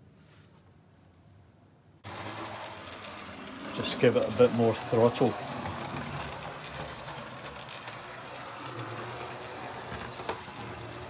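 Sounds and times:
model train motor humming: 2.0 - 11.0.

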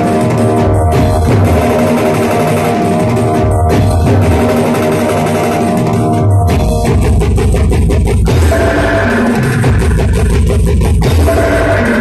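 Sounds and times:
live band music: 0.0 - 5.0.

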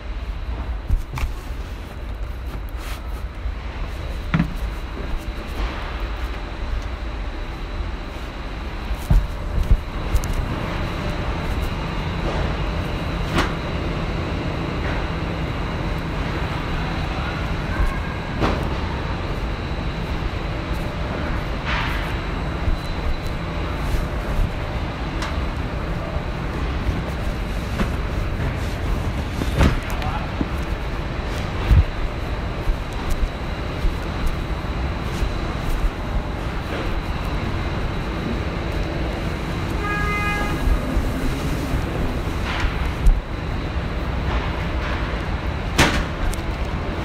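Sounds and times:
faint high whine: 0.0 - 44.3
factory machinery rumbling: 0.0 - 47.0.

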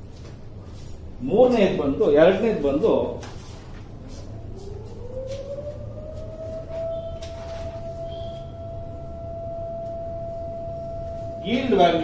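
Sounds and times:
whining tone rising in pitch: 4.4 - 12.0.

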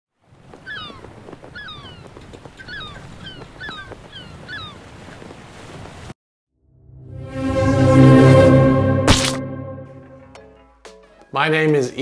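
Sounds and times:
bird calling: 0.5 - 5.0.

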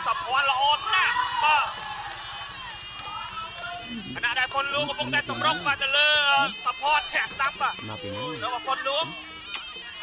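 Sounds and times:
commentator talking fast: 0.0 - 1.8, 3.0 - 9.3
arena crowd noise: 0.0 - 10.0.

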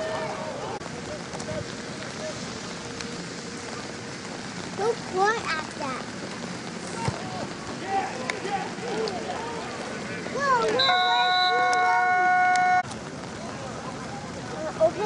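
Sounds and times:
players shouting: 0.0 - 0.8, 6.8 - 12.8
rain falling: 0.0 - 15.0.

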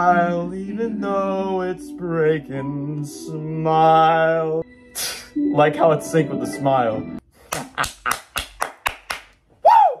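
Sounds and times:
man laughing: 7.5 - 8.4
man clapping hands: 7.5 - 9.4.

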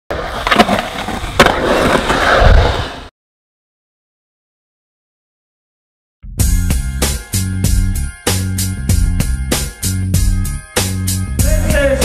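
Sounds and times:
skateboard wheels rolling: 0.1 - 3.1.

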